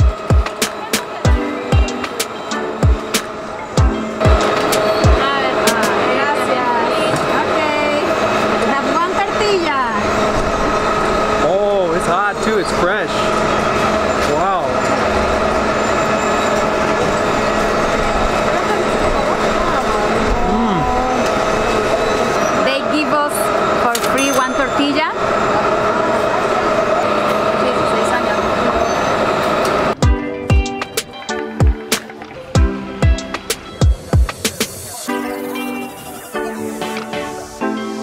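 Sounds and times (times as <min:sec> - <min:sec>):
rhythmic music track: 0:00.0 - 0:06.1, 0:30.0 - 0:38.0
music of held notes: 0:00.0 - 0:06.9, 0:30.0 - 0:38.0
crowd of voices: 0:00.0 - 0:38.0.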